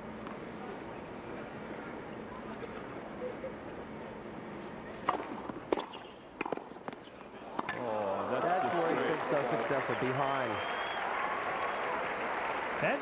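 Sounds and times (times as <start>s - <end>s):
crowd murmur: 0.4s - 5.6s
tennis ball strikes and bounces: 5.0s - 7.8s.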